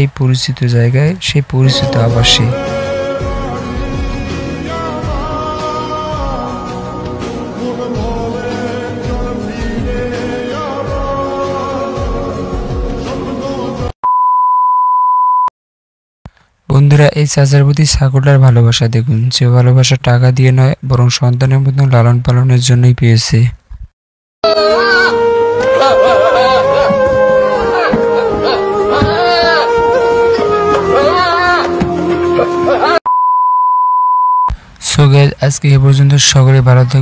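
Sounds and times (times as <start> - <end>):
background music: 1.6 - 14.0, 24.4 - 33.0
high test-tone beep: 33.1 - 34.5.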